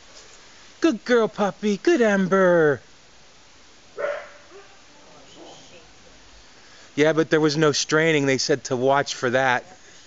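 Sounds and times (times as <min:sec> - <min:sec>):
dog barking: 0:04.0 - 0:05.6.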